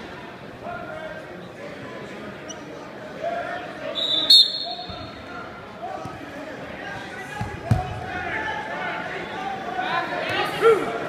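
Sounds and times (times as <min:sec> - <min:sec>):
referee's whistle: 0:04.0 - 0:05.2.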